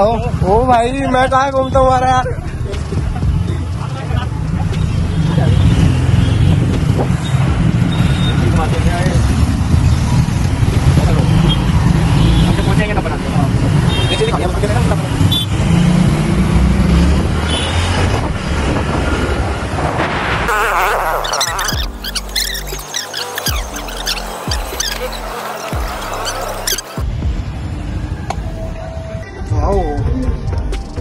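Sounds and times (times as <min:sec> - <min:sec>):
traffic engines and road noise: 0:00.0 - 0:31.0.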